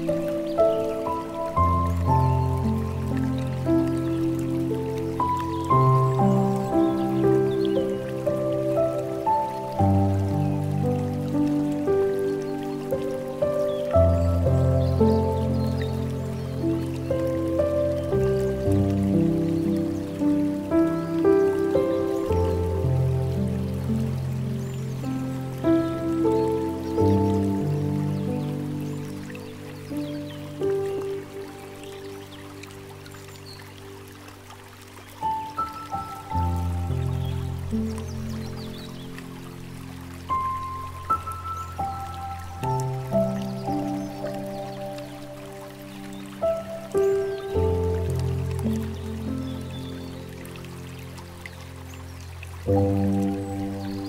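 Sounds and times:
slow gentle piano music: 0:00.0 - 0:54.0
water trickling from bamboo fountain: 0:00.0 - 0:54.0.

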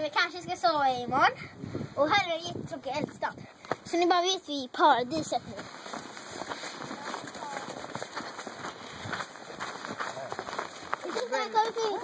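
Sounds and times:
footsteps crunching over snow: 0:05.2 - 0:12.0.

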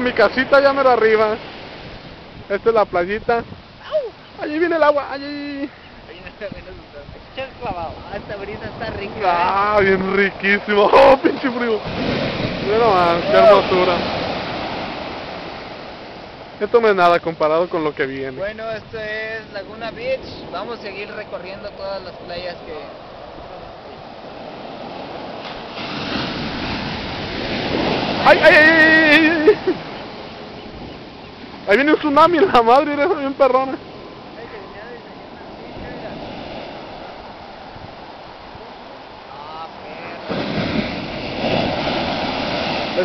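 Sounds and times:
ocean surf breaking: 0:00.0 - 0:43.0.

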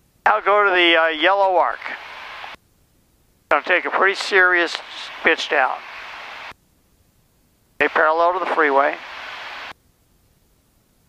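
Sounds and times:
intercom microphone hiss: 0:00.1 - 0:11.0.

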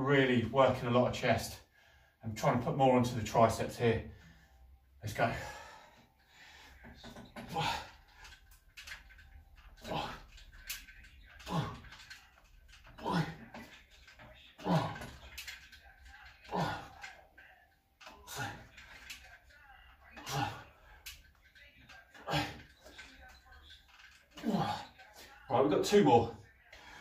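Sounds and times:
man grunting with effort: 0:16.4 - 0:17.0.

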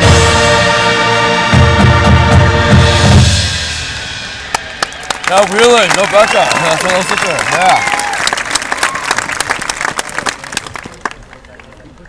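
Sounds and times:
bass drum and timpani hits: 0:00.0 - 0:04.7
sharp claps: 0:04.5 - 0:11.7.

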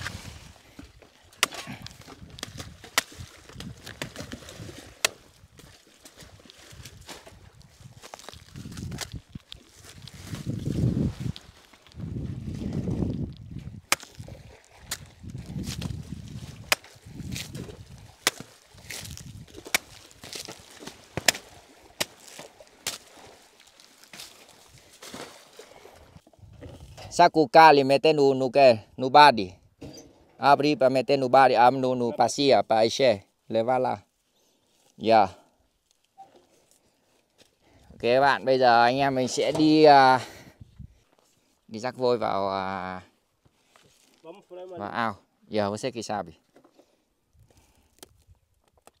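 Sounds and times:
machete chopping plant stem: 0:01.4 - 0:04.3, 0:05.0 - 0:05.2, 0:13.9 - 0:14.2, 0:16.6 - 0:23.0.

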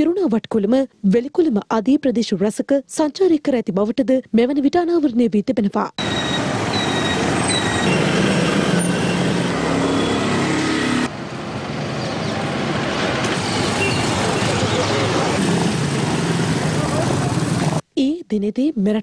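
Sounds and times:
street traffic: 0:05.9 - 0:17.9
people's voices: 0:14.1 - 0:15.5.

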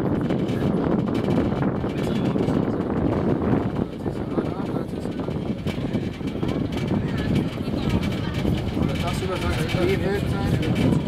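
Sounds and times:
train engine drone: 0:00.0 - 0:11.0
train knocks and rattles: 0:00.0 - 0:11.0.

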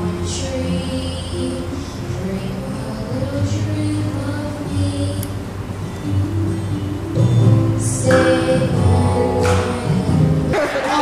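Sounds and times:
girl singing into a microphone: 0:00.0 - 0:05.4, 0:07.8 - 0:11.0
instrumental accompaniment with bass: 0:00.0 - 0:11.0.

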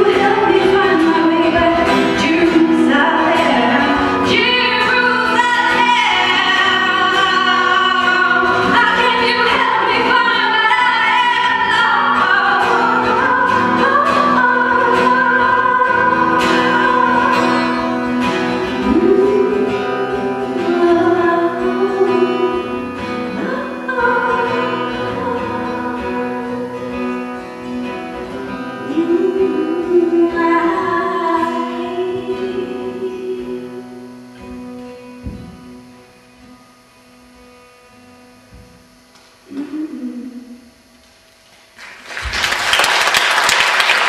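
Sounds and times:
woman singing: 0:00.0 - 0:27.7, 0:28.4 - 0:34.2
strummed acoustic guitar: 0:00.0 - 0:40.3.

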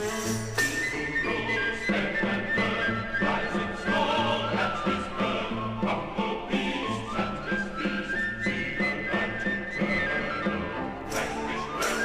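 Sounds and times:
high flute melody: 0:00.0 - 0:05.7
pulsing orchestral accompaniment: 0:00.0 - 0:12.0.

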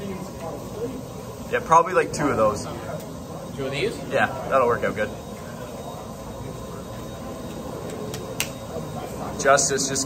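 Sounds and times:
murmur of distant voices: 0:00.0 - 0:10.0.

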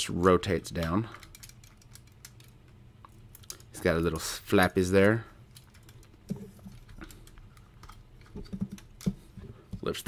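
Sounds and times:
plastic parts clicking: 0:00.7 - 0:03.8, 0:05.0 - 0:09.8.

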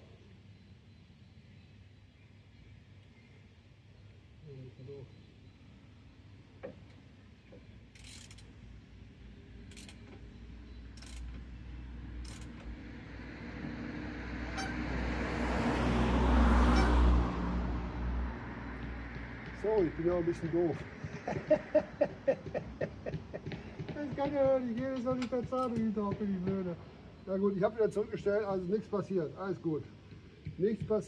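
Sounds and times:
vehicle passing by: 0:11.0 - 0:22.0.

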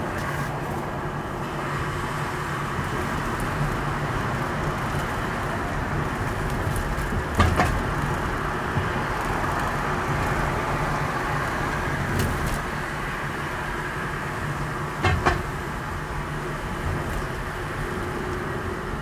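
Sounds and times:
engine and road noise rumble: 0:00.0 - 0:19.0.

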